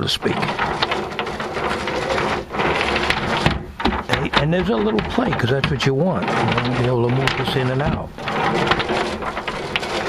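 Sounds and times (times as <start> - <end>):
wooden tray rumbling rattle: 0.0 - 10.0.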